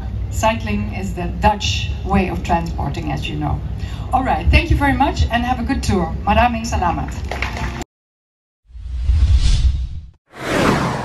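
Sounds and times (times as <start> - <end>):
deep rumbling swoosh: 8.7 - 11.0
whoosh with falling pitch: 8.7 - 11.0.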